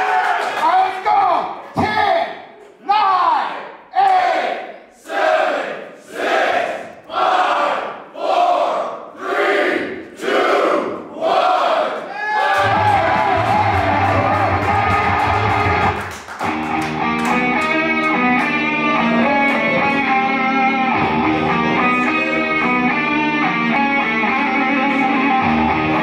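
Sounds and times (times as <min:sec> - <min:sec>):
voices chanting a shout: 0:01.8 - 0:14.6
loud rock music: 0:12.6 - 0:26.0
plucked guitar riff: 0:12.6 - 0:26.0.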